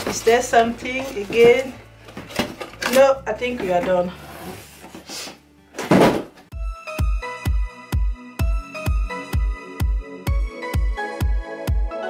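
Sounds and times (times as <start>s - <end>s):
thunk on a table: 5.8s - 6.4s.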